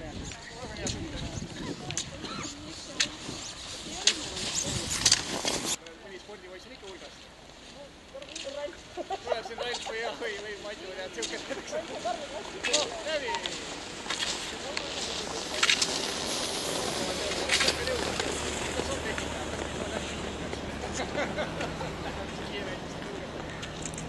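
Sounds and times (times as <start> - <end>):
people talking indistinctly: 0.0 - 24.0
loud rushing noise: 13.6 - 21.7.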